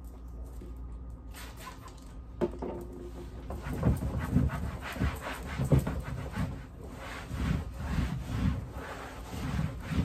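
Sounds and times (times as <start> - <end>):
paper towel rubbing plastic bin: 3.6 - 10.0.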